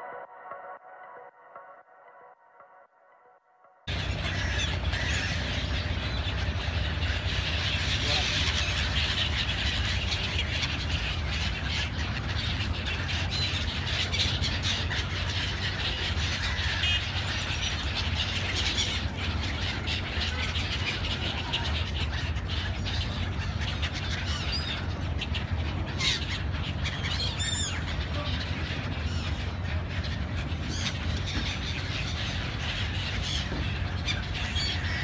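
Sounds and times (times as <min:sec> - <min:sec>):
gulls squawking and calling: 0:03.9 - 0:35.0
steady low rumble: 0:03.9 - 0:35.0.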